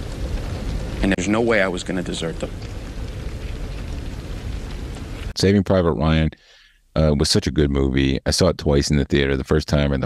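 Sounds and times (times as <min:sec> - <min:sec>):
low rumbling noise: 0:00.0 - 0:06.1.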